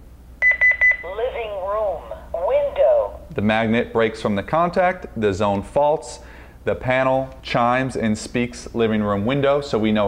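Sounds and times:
alarm panel short high beeps: 0:00.4 - 0:01.1
recorded voice announcing: 0:01.0 - 0:04.5.

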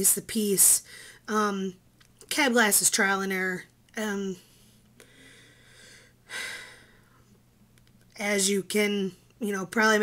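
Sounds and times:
person breathing: 0:00.8 - 0:01.3, 0:04.4 - 0:07.4.

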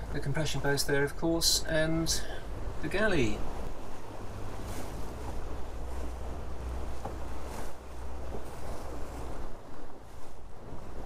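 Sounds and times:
water rushing along boat hull: 0:00.0 - 0:11.0.

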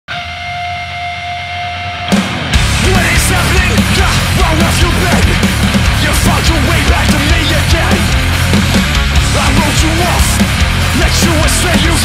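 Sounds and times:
guitar amplifier feedback tone: 0:00.1 - 0:02.7.

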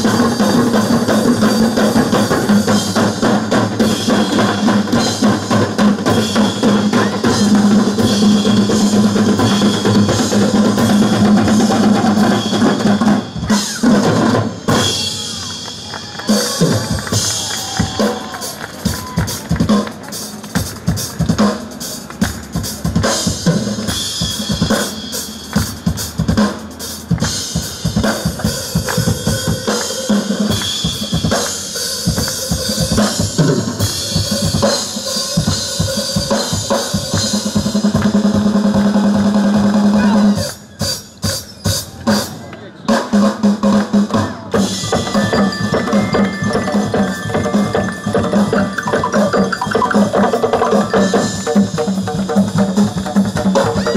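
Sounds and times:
barrel drums: 0:00.0 - 0:53.9
drum kit playing fast rhythm: 0:00.0 - 0:53.9.

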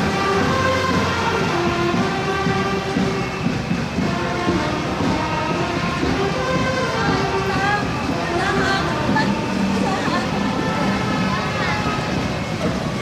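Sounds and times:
dense percussion: 0:00.0 - 0:13.0
street noise: 0:00.0 - 0:13.0
wind instrument melody: 0:00.0 - 0:13.0.

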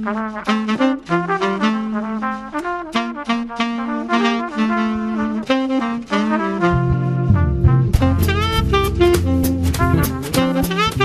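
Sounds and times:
jazz band playing: 0:00.0 - 0:11.0
trumpet and saxophone melody: 0:00.0 - 0:11.0
low bass part: 0:06.6 - 0:11.0.

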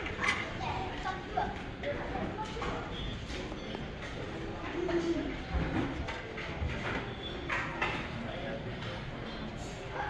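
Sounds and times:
indistinct voices of diners: 0:00.0 - 0:10.0.

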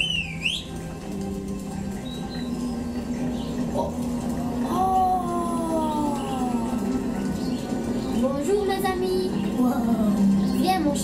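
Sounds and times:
soft sustained music: 0:00.0 - 0:11.0.

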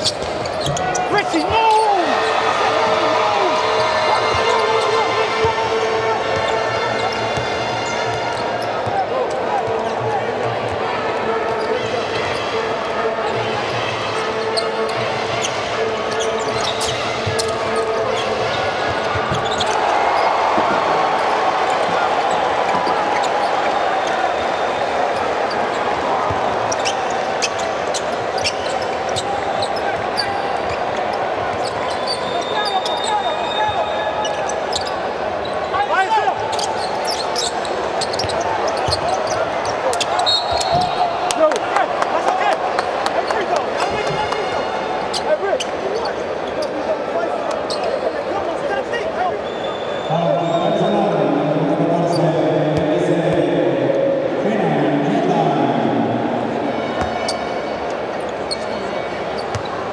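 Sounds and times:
voices in a hall: 0:00.0 - 0:59.9.

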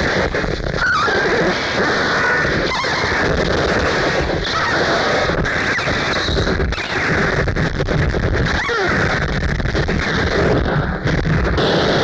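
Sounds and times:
dense distorted noise: 0:00.0 - 0:12.0.

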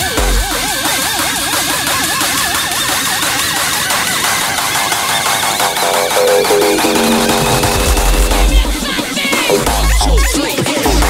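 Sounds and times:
fast rattling synth texture: 0:05.2 - 0:09.2
clipped synth riff: 0:05.3 - 0:09.2.

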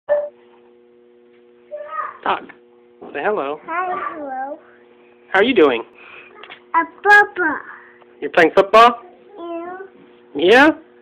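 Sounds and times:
faint electrical hum: 0:00.1 - 0:11.0.

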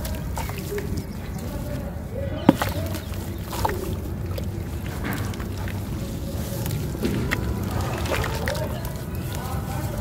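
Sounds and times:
water splashing in a tub: 0:02.4 - 0:10.0.

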